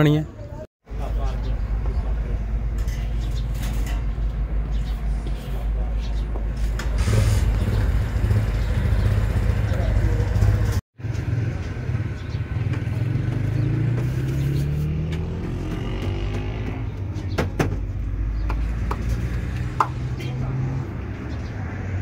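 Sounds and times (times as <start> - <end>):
traffic engine hum: 0.4 - 22.0
vehicle engine speeding up: 12.8 - 16.9.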